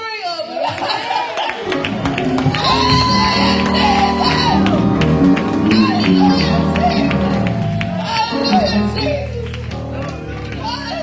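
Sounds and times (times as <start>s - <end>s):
keyboard chords: 1.6s - 11.0s.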